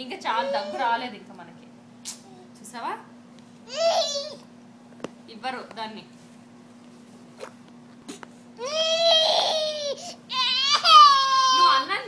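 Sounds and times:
toddler crying: 0.4s - 1.0s, 3.7s - 4.4s, 8.6s - 11.9s.

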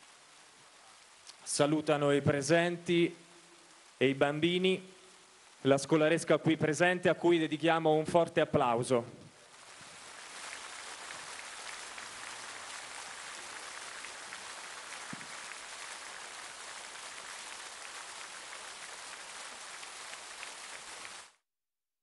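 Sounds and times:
crowd applauding: 10.0s - 21.2s.

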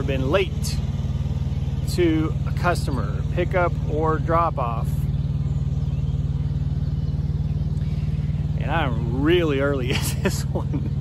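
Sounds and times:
small diesel engine droning: 0.0s - 11.0s.

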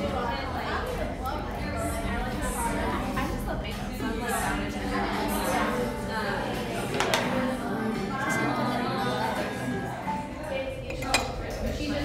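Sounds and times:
low background music: 0.0s - 12.0s
voices: 0.0s - 12.0s.

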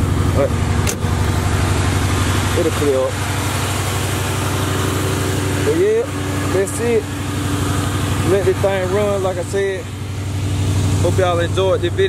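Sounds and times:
car engine idling: 0.0s - 12.0s
man talking: 0.3s - 0.6s, 2.5s - 3.2s, 5.6s - 7.1s, 8.2s - 9.9s, 11.0s - 12.0s.

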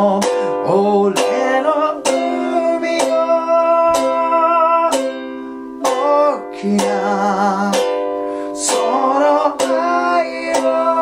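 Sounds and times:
man singing: 0.0s - 5.2s, 5.8s - 11.0s
strummed ukulele: 0.0s - 11.0s.

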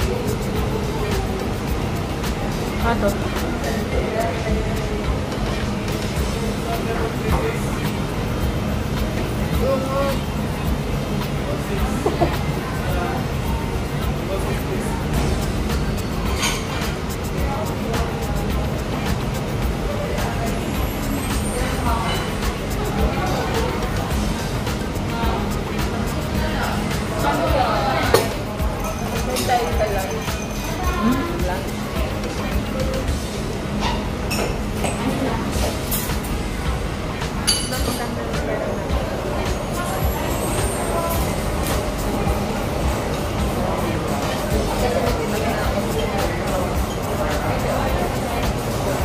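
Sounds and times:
indistinct chatter: 0.0s - 49.0s
music playing: 0.0s - 49.0s
tableware clinking: 16.2s - 17.0s, 37.5s - 38.2s.

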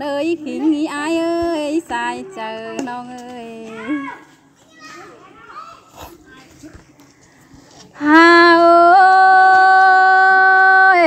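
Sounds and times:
chatter of voices: 0.6s - 8.0s
singing: 8.0s - 11.0s.

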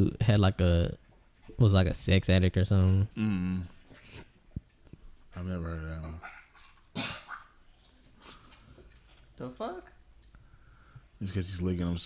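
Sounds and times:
dog gagging: 6.0s - 7.6s.

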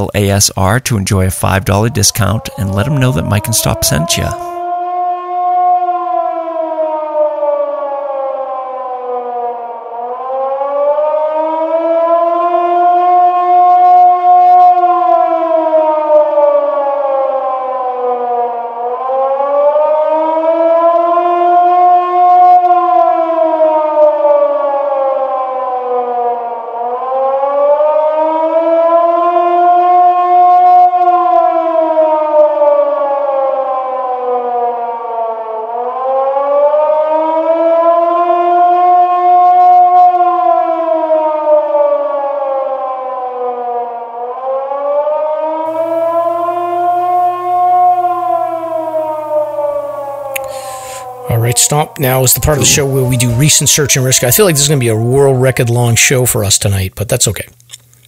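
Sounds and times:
siren wailing: 0.0s - 56.9s.

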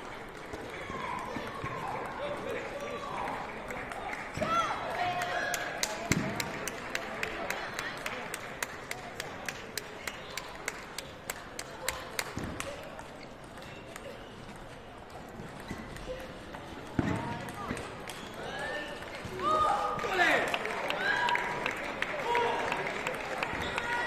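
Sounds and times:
murmur of voices: 0.0s - 24.0s.

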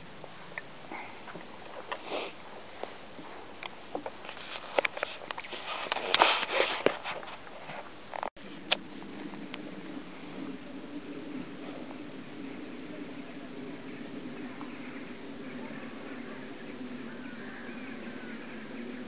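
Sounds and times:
low hum: 0.0s - 19.0s
handling noise rustling and clicks: 2.8s - 9.7s.

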